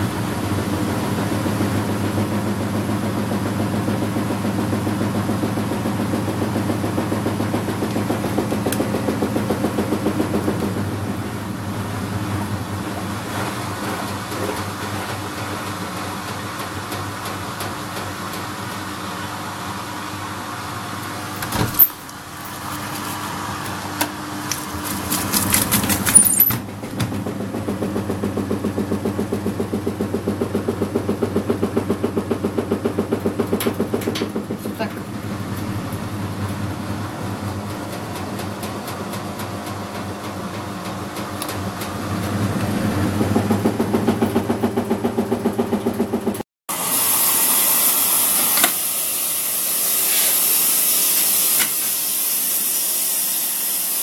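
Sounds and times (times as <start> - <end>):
washing machine drum turning: 0.0 - 19.2, 21.3 - 46.4.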